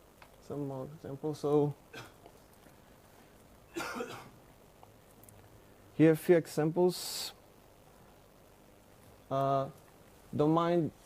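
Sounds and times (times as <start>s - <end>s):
short cough: 3.7s - 4.4s.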